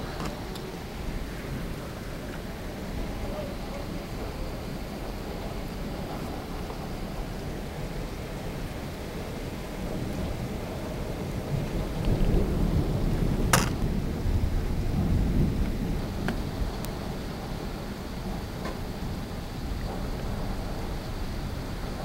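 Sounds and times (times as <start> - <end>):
deep thunder rumble: 0.0 - 22.0
gusting wind: 0.0 - 22.0
rain: 0.0 - 22.0.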